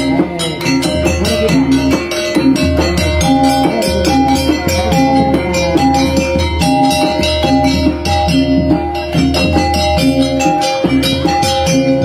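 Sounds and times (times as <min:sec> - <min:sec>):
drums and percussion: 0:00.0 - 0:12.0
plucked string melody: 0:00.0 - 0:12.0.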